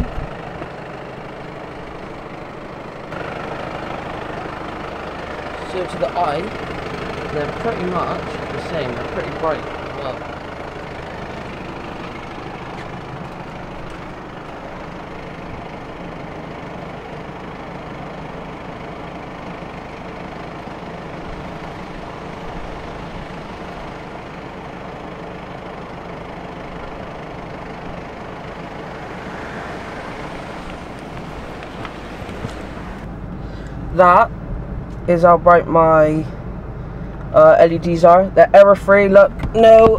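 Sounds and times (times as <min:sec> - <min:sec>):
car engine idling: 0:00.0 - 0:39.9.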